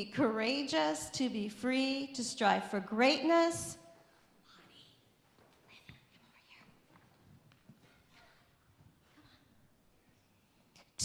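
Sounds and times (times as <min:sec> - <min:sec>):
faint whispering: 0:04.4 - 0:06.9.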